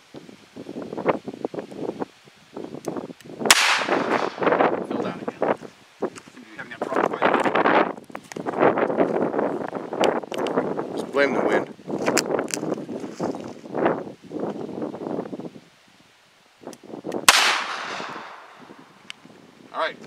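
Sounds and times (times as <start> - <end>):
revolver gunshot: 3.5 - 4.5, 17.2 - 18.6.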